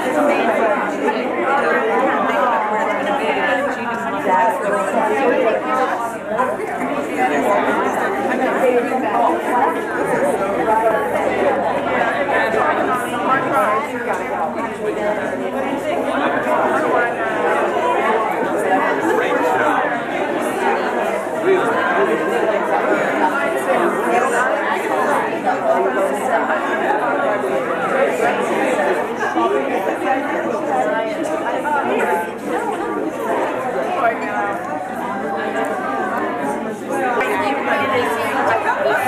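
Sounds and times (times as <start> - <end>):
chatter of many people: 0.0 - 39.0.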